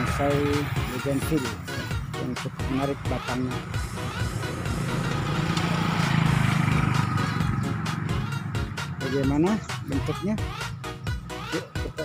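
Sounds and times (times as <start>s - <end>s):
vehicle engine passing: 0.0s - 11.5s
background music: 0.0s - 12.0s.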